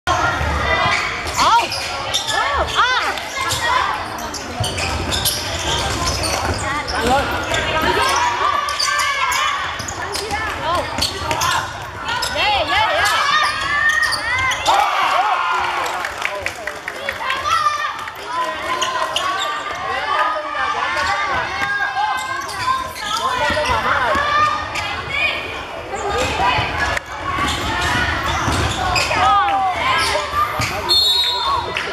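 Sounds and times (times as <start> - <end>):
sneaker squeaks on floor: 0.8 - 14.7, 21.0 - 25.2, 25.9 - 31.8
voices shouting: 6.9 - 16.1
basketball bouncing: 27.4 - 28.8.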